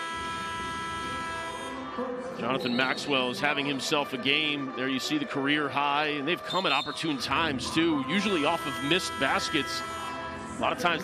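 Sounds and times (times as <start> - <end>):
arena game horn blast: 0.0 - 3.6, 6.6 - 11.0.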